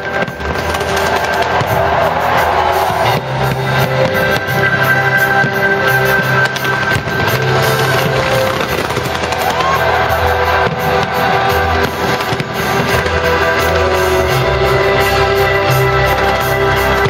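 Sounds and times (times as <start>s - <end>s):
fireworks bangs and crackles: 0.0s - 17.0s
music over loudspeakers: 0.0s - 17.0s.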